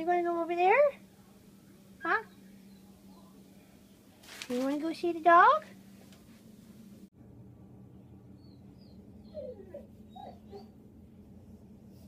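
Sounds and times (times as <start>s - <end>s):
dog whining: 8.4s - 10.8s.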